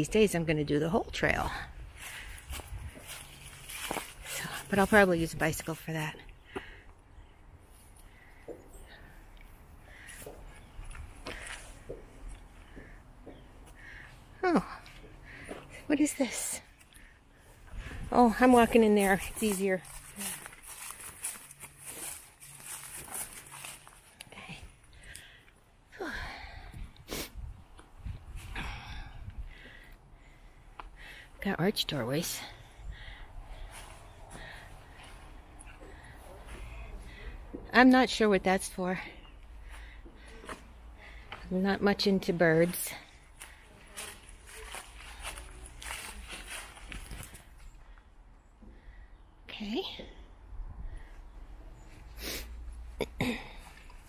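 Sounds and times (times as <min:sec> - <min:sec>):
footsteps on dirt path: 0:01.5 - 0:06.8, 0:07.8 - 0:24.8, 0:31.8 - 0:37.6, 0:39.1 - 0:41.6, 0:42.4 - 0:47.7
footsteps crunching through dry leaves: 0:02.0 - 0:05.1, 0:18.6 - 0:24.2, 0:43.4 - 0:47.5.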